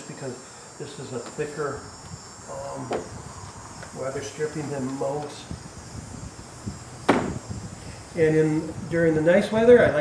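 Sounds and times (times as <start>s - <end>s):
faint handling noises: 2.8s - 5.5s.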